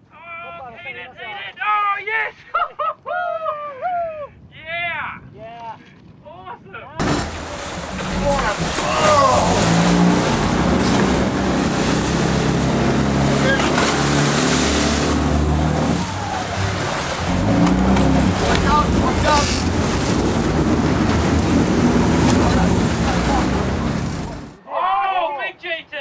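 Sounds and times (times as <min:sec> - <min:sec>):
boat engine running: 0:07.0 - 0:24.6
churning water splashing: 0:07.0 - 0:24.6.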